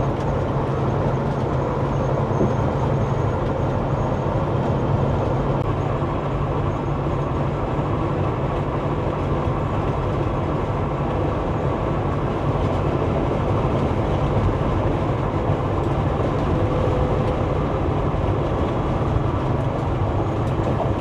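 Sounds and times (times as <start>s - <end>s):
truck diesel engine cruising: 0.0s - 21.0s
tyre and road noise: 0.0s - 21.0s.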